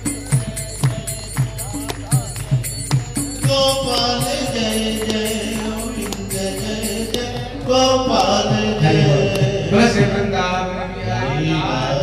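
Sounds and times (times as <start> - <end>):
devotional chant with music: 0.0 - 12.0.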